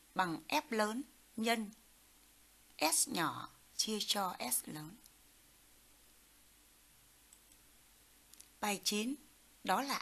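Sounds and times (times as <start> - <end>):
faint room-tone hiss: 0.0 - 10.0
very faint clicks: 7.3 - 7.7, 8.3 - 8.6.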